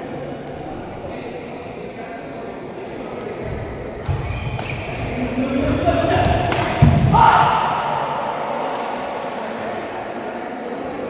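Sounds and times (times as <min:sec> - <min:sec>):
people shouting: 0:06.0 - 0:09.5
racket striking shuttlecock: 0:06.5 - 0:07.7.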